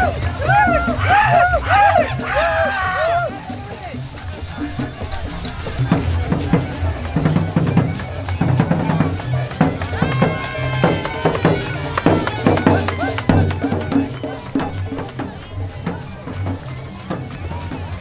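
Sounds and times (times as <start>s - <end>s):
held steady note: 0.0s - 18.0s
street band drums and percussion: 0.0s - 18.0s.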